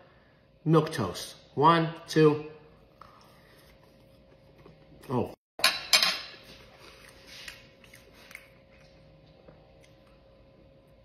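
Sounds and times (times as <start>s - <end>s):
chewing sounds: 6.4s - 11.0s.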